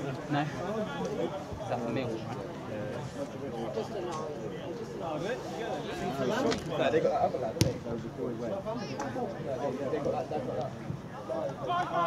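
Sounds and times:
rugby ball thud: 0:07.6 - 0:07.8.

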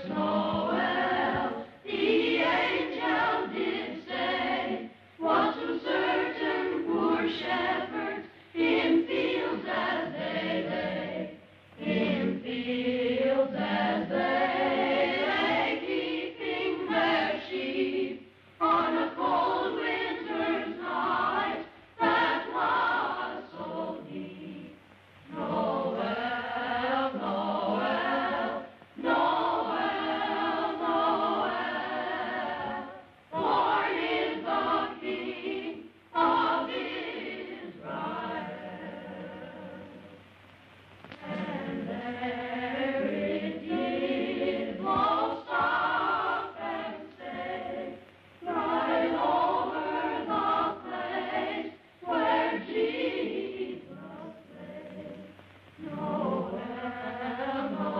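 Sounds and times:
choir singing: 0:00.0 - 0:40.3, 0:41.2 - 0:57.9.

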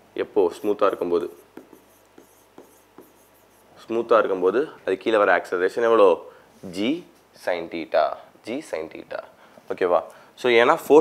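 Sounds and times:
writing on touchscreen glass: 0:00.5 - 0:03.8.

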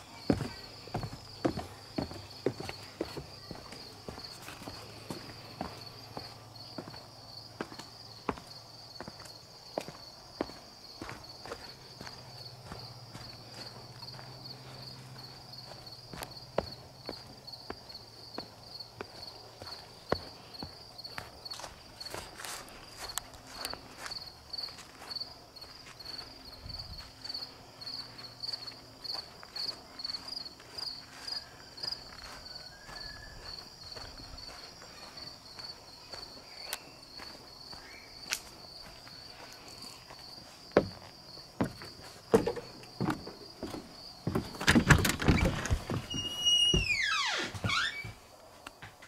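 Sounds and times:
insects chirping in pulsed trill: 0:00.0 - 0:44.6
footsteps walking: 0:00.0 - 0:49.0.

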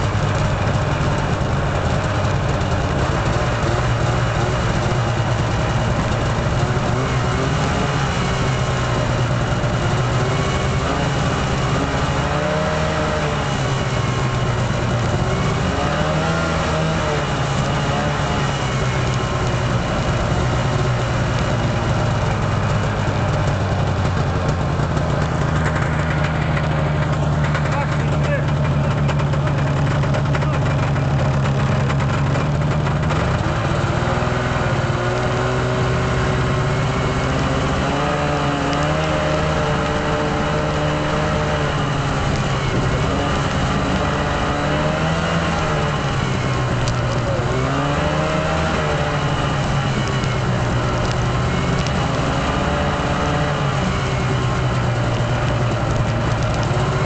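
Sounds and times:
snowmobile engine running: 0:00.0 - 0:57.0.

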